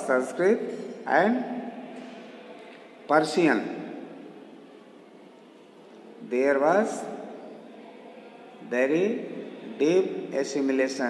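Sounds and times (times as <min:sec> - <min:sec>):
faint recording hiss: 0:00.0 - 0:11.0.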